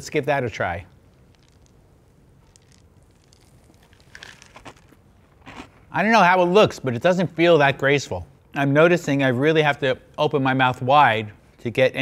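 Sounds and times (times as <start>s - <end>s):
soft crunching: 0.6s - 6.0s
cereal and milk being poured: 1.1s - 1.8s, 2.4s - 5.6s.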